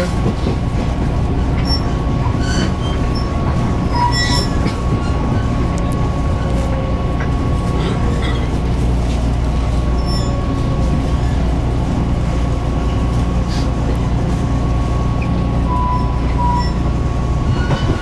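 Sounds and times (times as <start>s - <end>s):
train running rumble: 0.0s - 18.0s.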